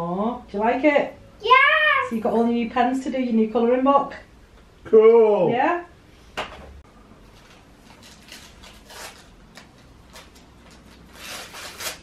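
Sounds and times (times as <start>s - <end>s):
wrapping paper tearing: 7.8s - 12.0s.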